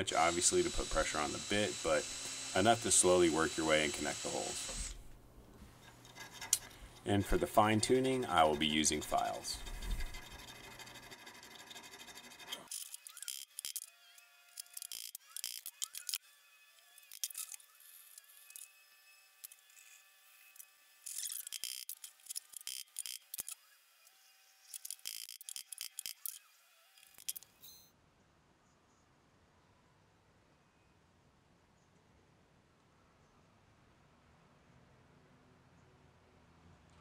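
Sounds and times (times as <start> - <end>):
needle file rasping on brass: 5.8 - 7.1, 9.2 - 13.4.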